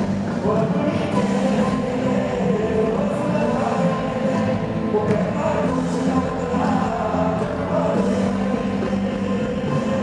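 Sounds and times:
live band playing: 0:00.0 - 0:10.0
man singing into a microphone: 0:00.0 - 0:10.0.

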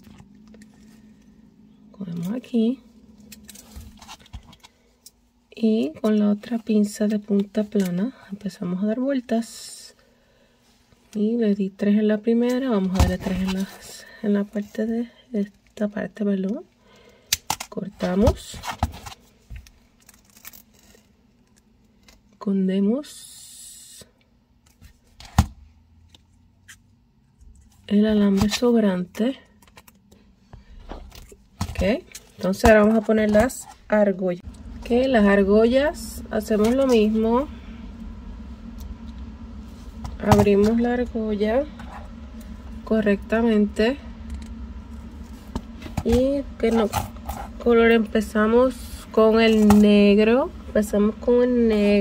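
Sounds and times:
low steady hum: 0:00.0 - 0:52.0.

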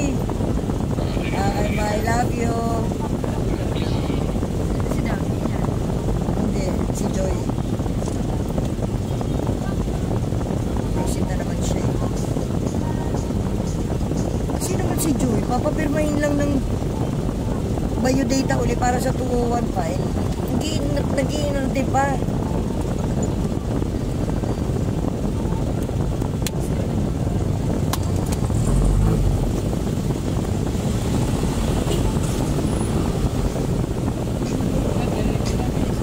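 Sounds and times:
traffic rumble inside car: 0:00.0 - 0:36.0.

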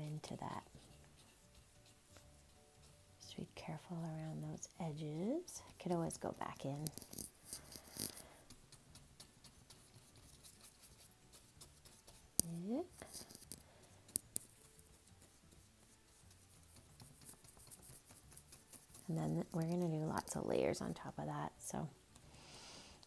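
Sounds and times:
paintbrush rubbing on paper: 0:00.0 - 0:21.2.

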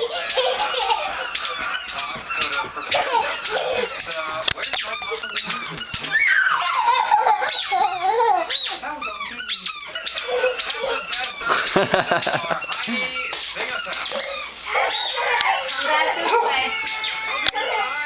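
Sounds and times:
squeaky shoes running: 0:00.0 - 0:11.5, 0:12.4 - 0:17.8.

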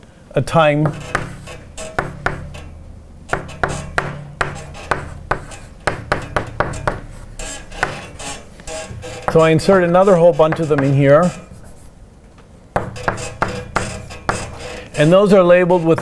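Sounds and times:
chalk writing on blackboard: 0:00.8 - 0:02.6, 0:03.3 - 0:12.0, 0:12.8 - 0:16.0.

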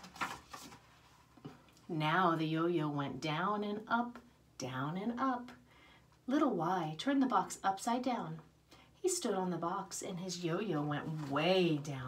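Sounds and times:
book page turning: 0:00.0 - 0:01.5.

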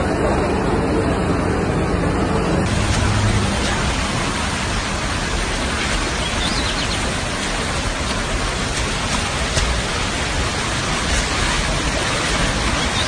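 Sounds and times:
floodwater rushing: 0:02.6 - 0:13.0.

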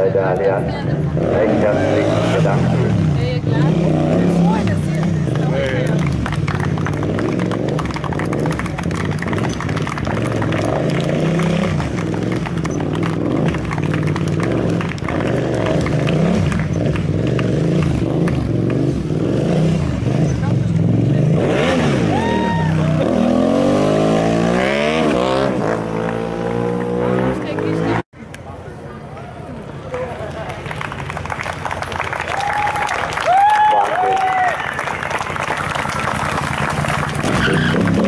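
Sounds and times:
motorcycle engine revving: 0:00.8 - 0:28.1, 0:35.6 - 0:38.0.

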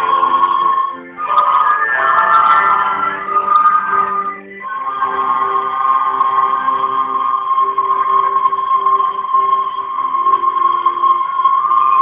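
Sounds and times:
lower recorder notes: 0:00.0 - 0:12.0
recorders holding high note: 0:00.0 - 0:12.0.

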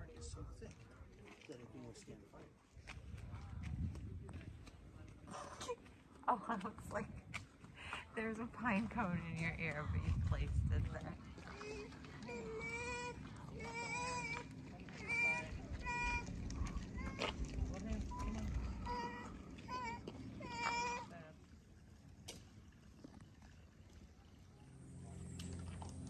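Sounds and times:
low background rumble: 0:03.0 - 0:26.0.

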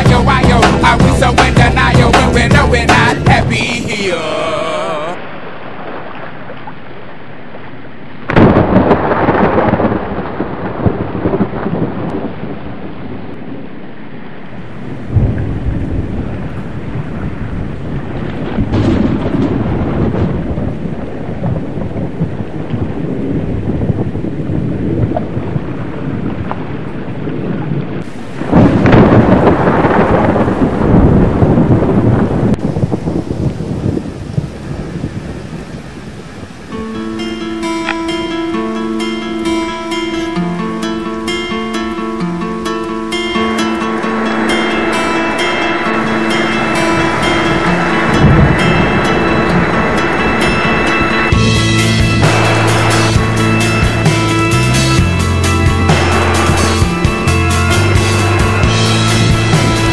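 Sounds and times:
rain hissing: 0:00.0 - 0:59.9
rolling thunder: 0:08.2 - 0:13.8, 0:14.4 - 0:42.0, 0:43.4 - 0:59.9.

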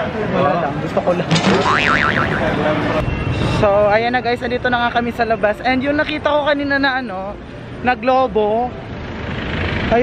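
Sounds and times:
crowd noise: 0:00.0 - 0:05.4
springy boing: 0:01.5 - 0:02.5.

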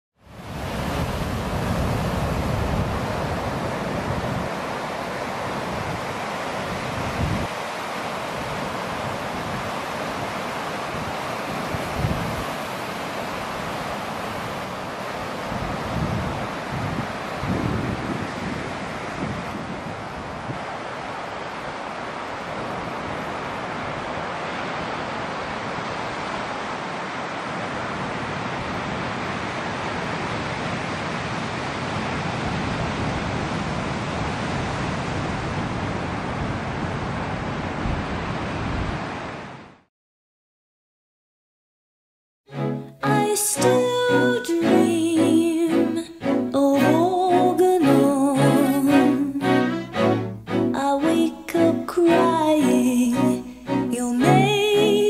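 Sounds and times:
ocean surf breaking: 0:00.3 - 0:39.7, 0:42.5 - 0:55.0
wind buffeting microphone: 0:00.4 - 0:07.6, 0:08.3 - 0:12.6, 0:15.3 - 0:20.8.

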